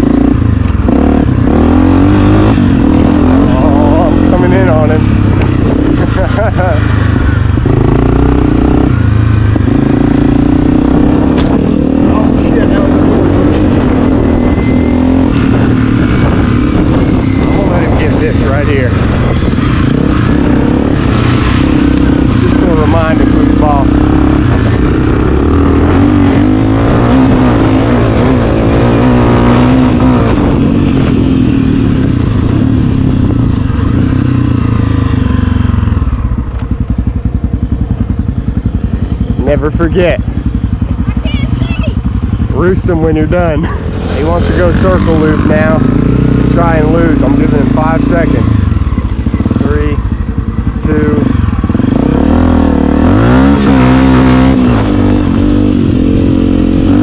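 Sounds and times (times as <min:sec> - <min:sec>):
wind on microphone: 0:00.0 - 0:39.4
dirt bike engine revving: 0:00.0 - 0:57.0.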